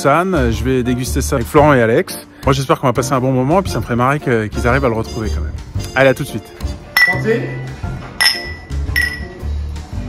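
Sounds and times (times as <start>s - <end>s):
music: 0.0s - 10.0s
wine glasses clinking: 7.0s - 7.2s, 8.2s - 9.4s.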